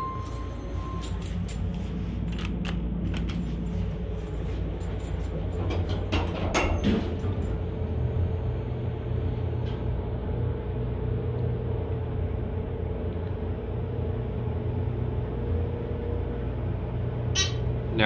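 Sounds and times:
elevator car rumble and hum: 0:00.0 - 0:18.0.

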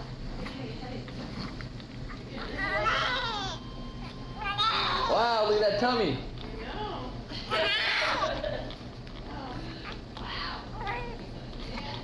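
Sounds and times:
newborn baby mewing cries: 0:02.4 - 0:05.4, 0:07.5 - 0:08.4.

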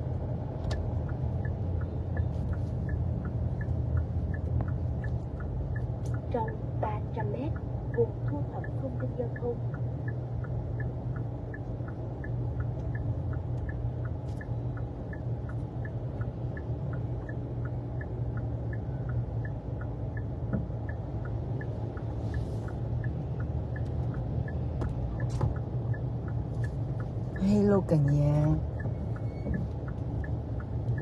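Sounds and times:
engine and road rumble: 0:00.0 - 0:31.0
turn signal ticking: 0:00.0 - 0:31.0.

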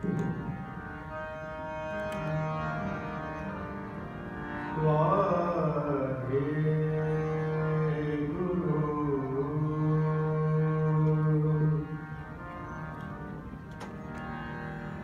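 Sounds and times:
man singing long ornamented notes: 0:00.0 - 0:12.5
harmonium drone: 0:00.0 - 0:15.0.

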